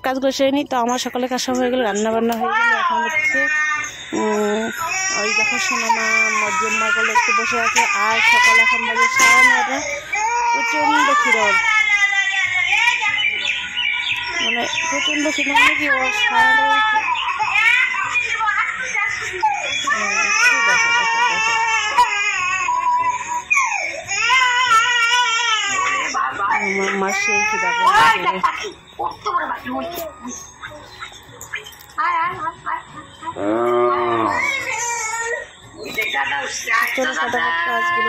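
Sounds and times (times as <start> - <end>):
infant crying: 2.7 - 13.3, 14.3 - 28.5, 33.4 - 35.5.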